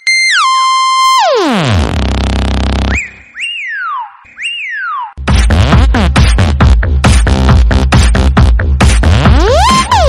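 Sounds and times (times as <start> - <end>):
electronic tone sliding down: 0.0 - 5.2.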